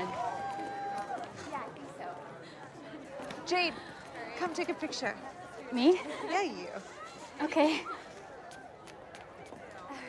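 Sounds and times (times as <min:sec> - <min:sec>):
murmur of outdoor crowd: 0:00.0 - 0:10.0.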